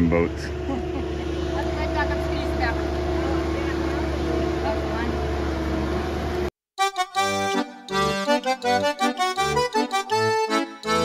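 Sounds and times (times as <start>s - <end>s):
forklift engine droning: 0.0s - 6.5s.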